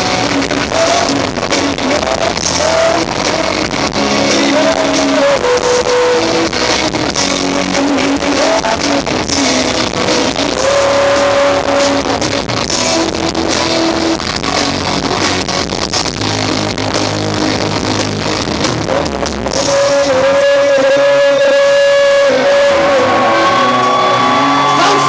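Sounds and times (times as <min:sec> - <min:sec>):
bass: 0:00.0 - 0:25.0
electric guitars: 0:00.0 - 0:25.0.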